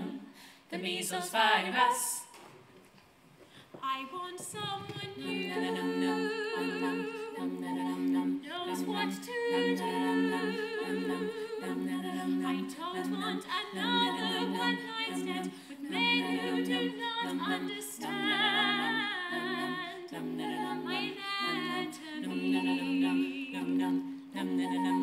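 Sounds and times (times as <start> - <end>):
women singing backing chords: 0.0 - 2.3, 3.8 - 25.0.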